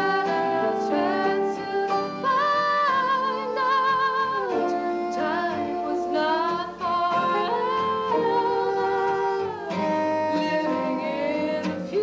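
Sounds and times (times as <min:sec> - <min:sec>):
acoustic guitar: 0:00.0 - 0:12.0
piano: 0:00.0 - 0:12.0
woman singing: 0:00.0 - 0:12.0.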